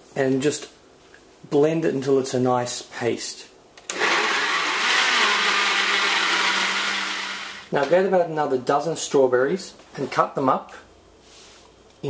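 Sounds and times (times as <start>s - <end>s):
blender running: 3.9s - 7.7s.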